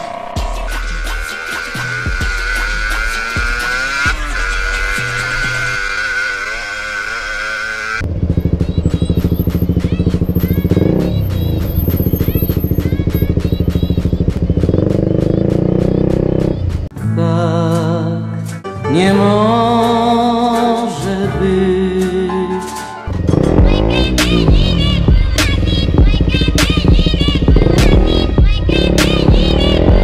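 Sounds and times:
motorcycle engine running: 0:00.0 - 0:16.9, 0:23.1 - 0:30.0.

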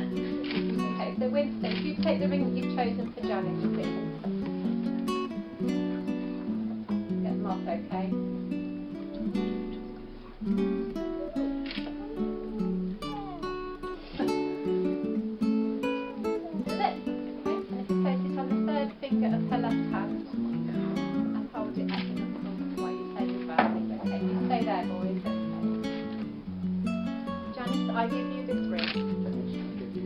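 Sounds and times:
acoustic guitar music: 0:00.0 - 0:30.0.

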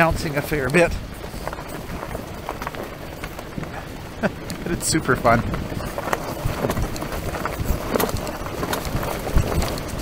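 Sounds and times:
knocks and rattles over rocks: 0:00.0 - 0:10.0
tyres rolling over rocky gravel: 0:00.0 - 0:10.0.

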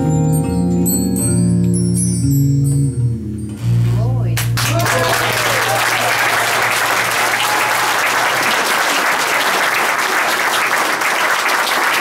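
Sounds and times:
audience applauding: 0:04.5 - 0:12.0.

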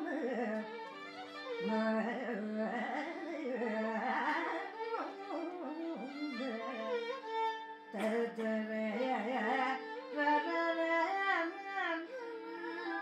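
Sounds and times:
violin sliding phrases: 0:00.0 - 0:13.0.

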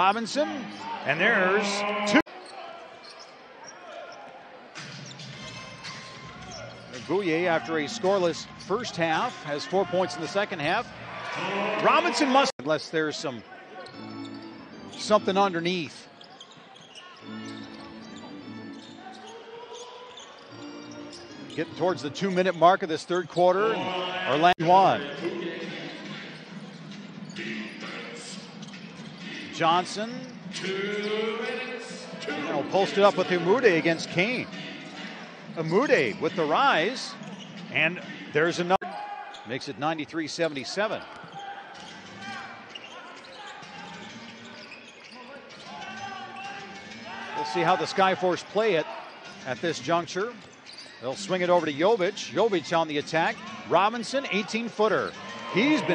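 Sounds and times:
crowd voices: 0:00.0 - 0:05.2, 0:05.8 - 0:39.8, 0:40.5 - 0:55.9
sneakers squeaking: 0:00.2 - 0:12.5, 0:13.4 - 0:23.3, 0:25.5 - 0:31.4, 0:32.0 - 0:39.8, 0:40.5 - 0:49.4, 0:50.2 - 0:52.0, 0:52.9 - 0:55.9
arena music: 0:00.4 - 0:02.2, 0:07.3 - 0:12.5, 0:23.4 - 0:38.8, 0:52.4 - 0:55.9.

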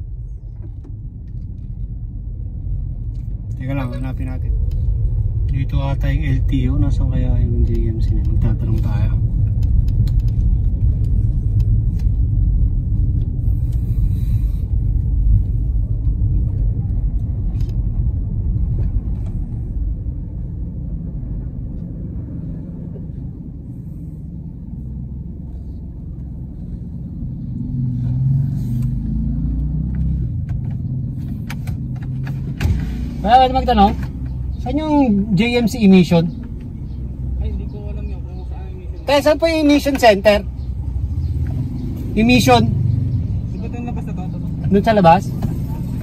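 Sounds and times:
car engine and tyres rumbling: 0:00.0 - 0:46.0.

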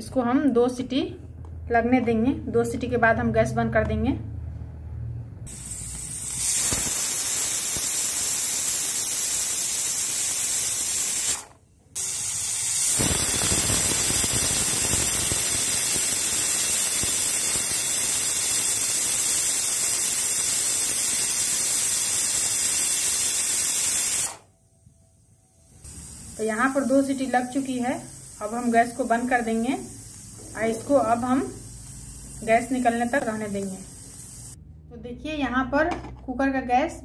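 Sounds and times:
pressure cooker whistle hissing: 0:05.5 - 0:34.6.

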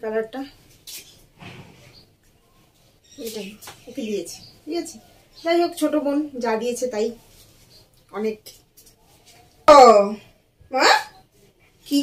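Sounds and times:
woman speaking: 0:00.0 - 0:00.5, 0:03.2 - 0:07.2, 0:08.1 - 0:08.6, 0:09.7 - 0:11.2.

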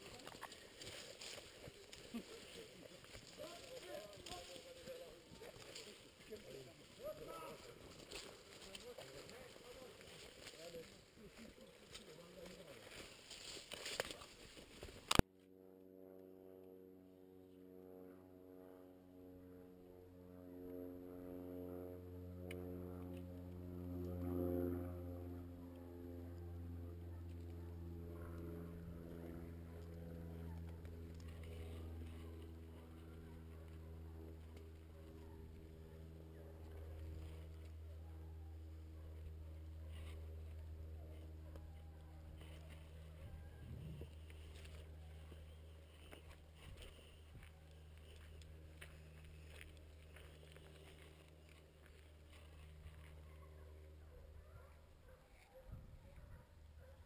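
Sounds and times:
footsteps in dry scrub: 0:00.0 - 0:15.2, 0:26.2 - 0:54.4
rustling branches: 0:00.0 - 0:15.2
low sustained music drone: 0:00.0 - 0:55.6.

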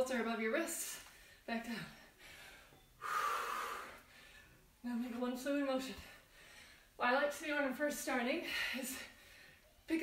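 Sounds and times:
woman breathing out hard: 0:02.2 - 0:04.6.

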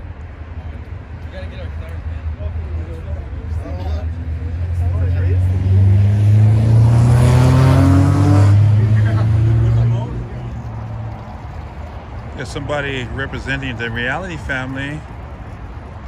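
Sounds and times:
car engine accelerating past: 0:04.7 - 0:10.3.

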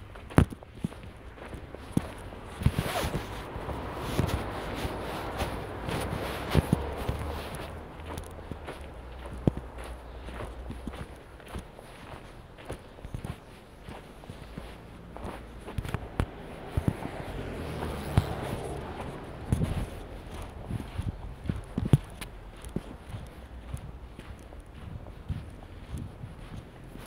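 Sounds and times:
footsteps crunching on snow: 0:00.0 - 0:27.0.

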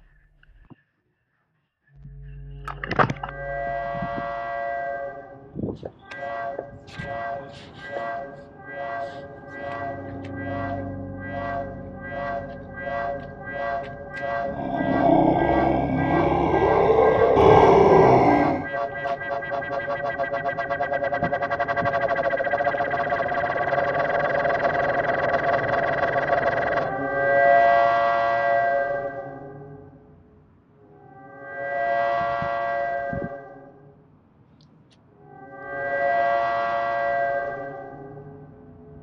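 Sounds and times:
ambient synthesizer chord: 0:08.4 - 0:28.3
loud growling roar: 0:14.2 - 0:18.7.

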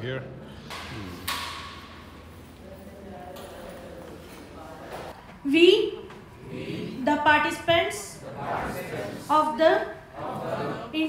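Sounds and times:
indistinct voices: 0:00.6 - 0:01.6, 0:02.8 - 0:11.0.

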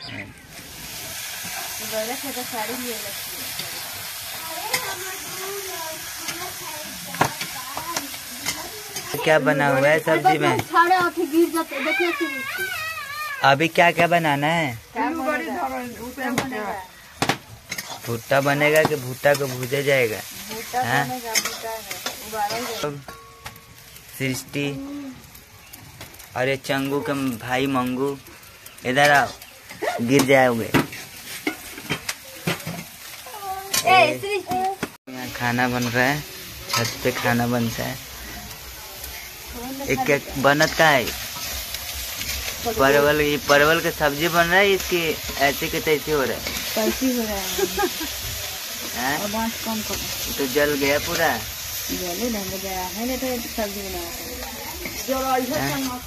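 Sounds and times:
onions sizzling in oil: 0:00.0 - 0:56.0.

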